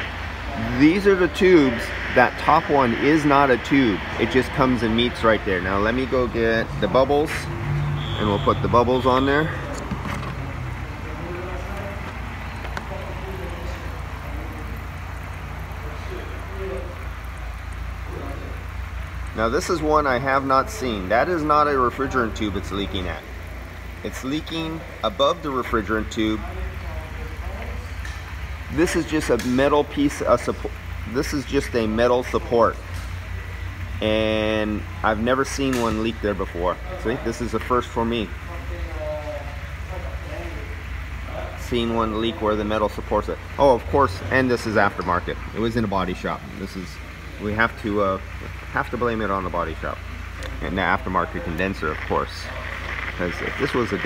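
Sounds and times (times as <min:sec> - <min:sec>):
steady rushing hiss: 0:10.4 - 0:54.0.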